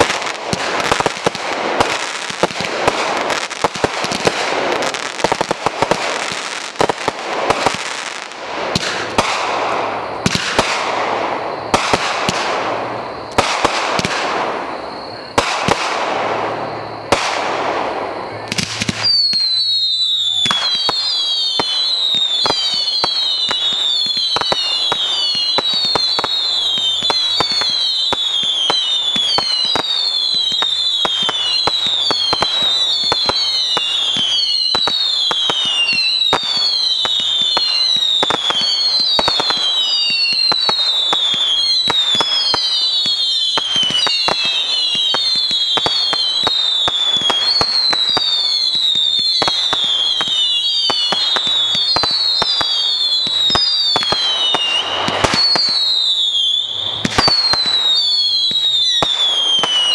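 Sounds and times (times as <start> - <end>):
crackle of pops and small bangs: 0.0 - 14.7, 15.3 - 59.9
fireworks whistles falling in pitch: 0.0 - 59.9.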